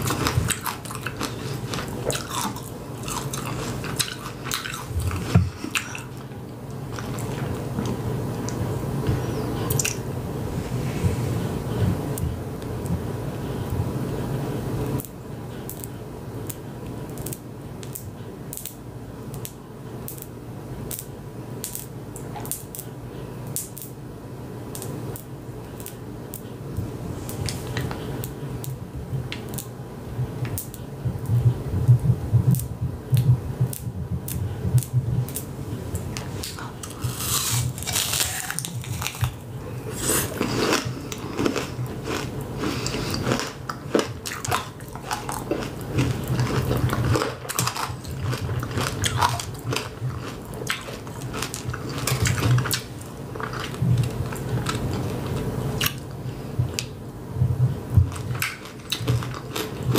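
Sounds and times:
low steady hum: 0:00.0 - 0:59.9
candy shell crunching in teeth: 0:36.5 - 0:55.0, 0:58.1 - 0:59.9.

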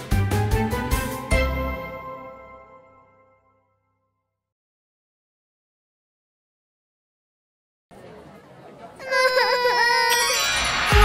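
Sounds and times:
upbeat theme music: 0:00.0 - 0:03.4, 0:10.3 - 0:11.0
cartoon baby crying: 0:09.0 - 0:11.0.

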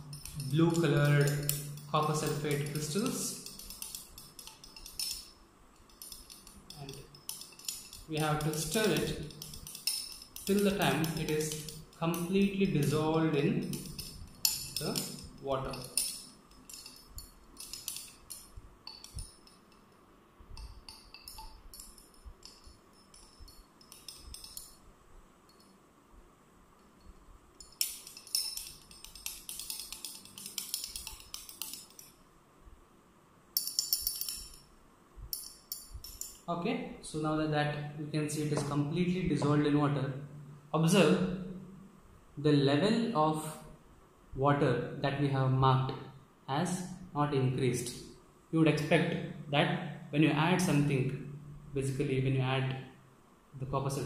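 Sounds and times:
glass rod clinking in test tube: 0:00.0 - 0:24.9, 0:25.5 - 0:25.8, 0:26.8 - 0:32.2, 0:33.5 - 0:36.5.

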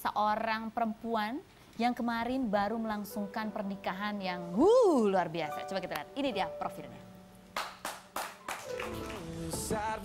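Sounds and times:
music: 0:02.5 - 0:10.0
hand claps: 0:07.6 - 0:09.3.

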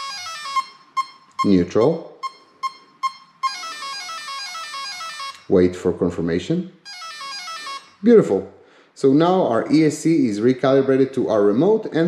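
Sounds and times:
electronic beeps descending in pitch: 0:00.0 - 0:05.5, 0:06.9 - 0:08.0.

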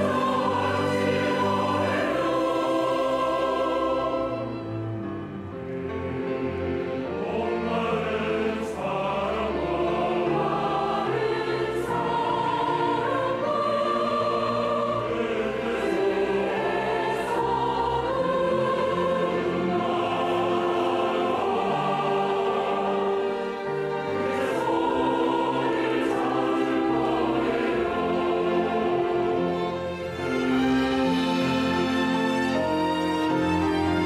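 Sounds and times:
keyboard: 0:00.0 - 0:34.0
mixed choir singing: 0:00.0 - 0:34.0
string orchestra: 0:00.0 - 0:34.0.

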